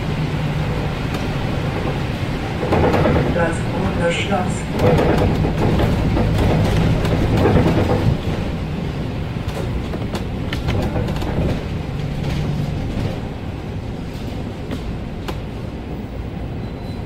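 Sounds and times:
tyre noise on wet road: 0:00.0 - 0:15.7
bus engine running: 0:00.0 - 0:17.0
light rattles and clicks: 0:01.0 - 0:08.4, 0:09.4 - 0:13.3.

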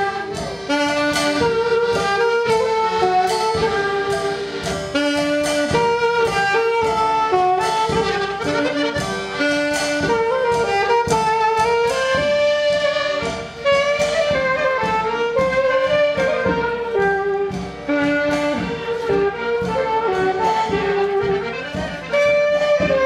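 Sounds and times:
accordion: 0:00.0 - 0:23.0
drum kit steady beat: 0:00.0 - 0:23.0
saxophone tango melody: 0:00.0 - 0:23.0.

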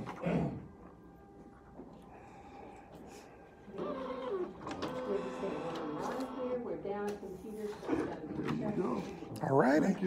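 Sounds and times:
small printer printing: 0:03.5 - 0:07.0.

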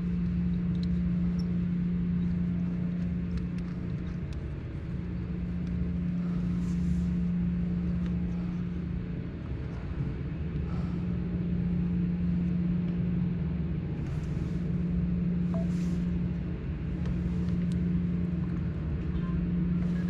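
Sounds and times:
low machine hum: 0:00.0 - 0:20.0.

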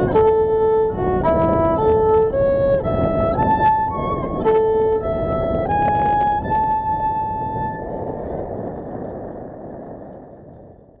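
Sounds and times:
violin high bowed note: 0:00.0 - 0:07.8
wind rush on microphone: 0:00.0 - 0:11.0.

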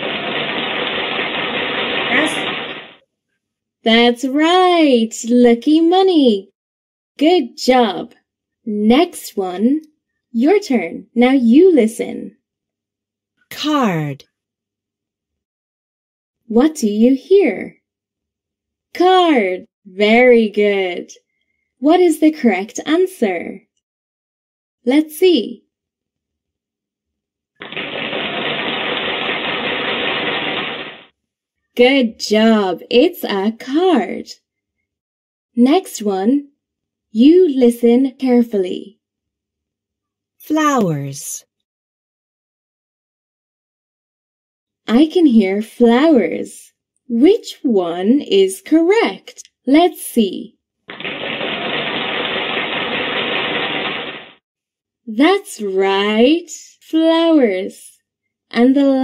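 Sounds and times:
rapid drumroll: 0:00.0 - 0:03.0, 0:27.6 - 0:31.1, 0:50.9 - 0:54.4
rapid rattling sound effect: 0:00.0 - 0:03.0, 0:27.6 - 0:31.2, 0:50.9 - 0:54.4.

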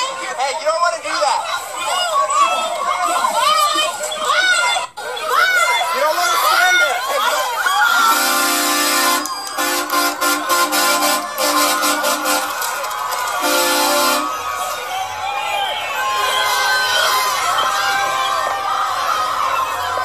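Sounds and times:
crowd shouting and cheering: 0:00.0 - 0:20.0
truck horn honking: 0:07.9 - 0:14.4.

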